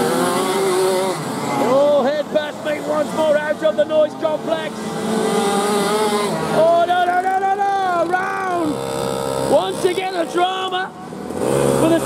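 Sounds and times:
kart engines racing past: 0.0 - 12.0.

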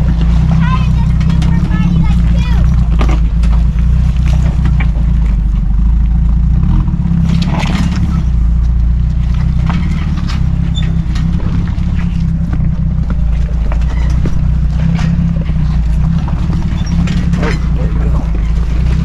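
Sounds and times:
engine running at low revs: 0.0 - 19.0
tyres crunching on rocks: 7.2 - 19.0.

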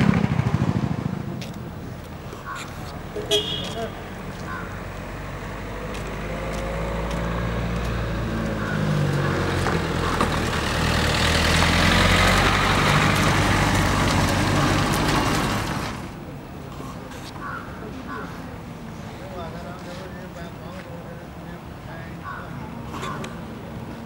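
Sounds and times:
car driving past: 3.2 - 16.2.

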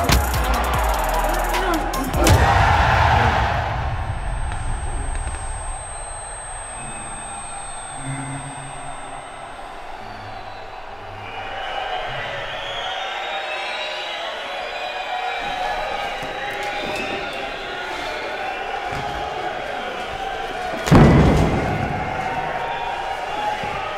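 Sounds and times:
heavy impact: 0.0 - 8.0
crowd noise: 0.0 - 23.9.

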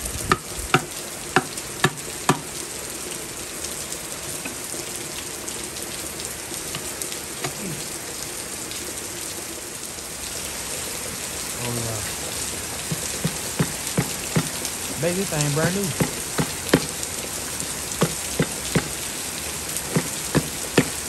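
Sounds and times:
steady rain: 0.0 - 21.0
wooden handle knocking on metal: 12.9 - 14.6, 15.6 - 17.0, 18.0 - 19.0, 19.9 - 21.0.

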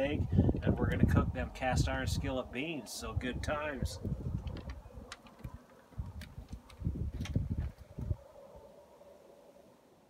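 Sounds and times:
low rumbling on microphone: 0.0 - 8.7.

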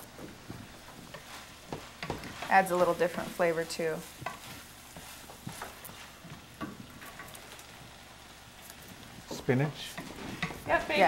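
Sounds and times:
meat and beans frying in skillet: 0.0 - 11.0
spatula scraping pan: 0.6 - 7.7, 8.8 - 11.0.

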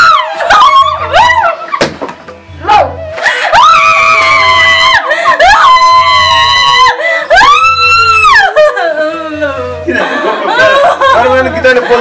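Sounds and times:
woman wailing: 2.7 - 10.8.

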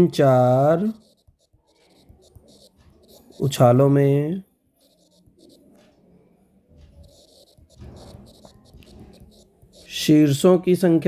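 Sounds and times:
stylus scratching on tablet: 0.0 - 4.1, 4.7 - 6.1, 6.7 - 10.5.

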